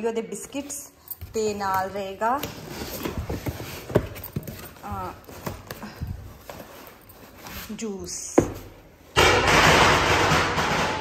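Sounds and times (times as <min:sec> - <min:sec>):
cardboard boxes knocking and rustling: 0:01.3 - 0:08.8.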